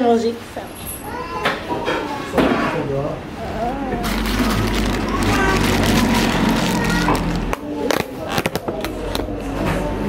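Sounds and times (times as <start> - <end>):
plastic lid crackling: 4.1 - 9.2.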